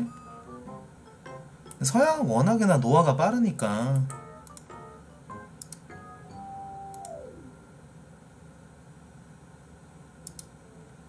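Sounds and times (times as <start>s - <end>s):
faint room hiss: 0.0s - 11.0s
click: 4.0s - 4.7s, 5.6s - 5.8s, 6.9s - 7.2s, 10.2s - 10.5s.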